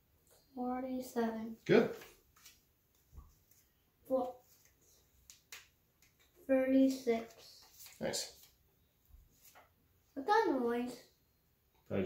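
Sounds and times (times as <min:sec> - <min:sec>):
flashcards clicking and snapping: 0:04.6 - 0:06.3.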